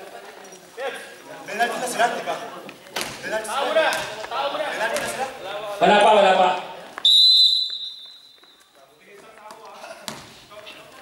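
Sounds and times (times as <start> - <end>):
referee's whistle blast: 7.0 - 8.4.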